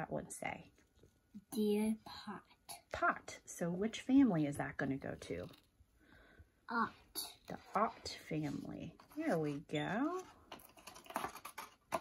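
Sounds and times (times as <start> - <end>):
paper card taps and rustles: 10.4 - 12.0.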